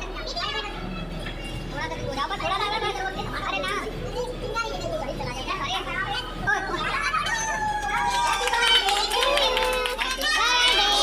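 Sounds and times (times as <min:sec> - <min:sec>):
chatter of children and adults: 0:00.0 - 0:11.0.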